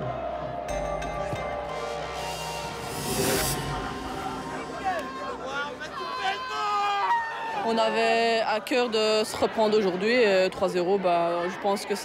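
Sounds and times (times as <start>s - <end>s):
people talking and calling out: 2.8s - 12.0s.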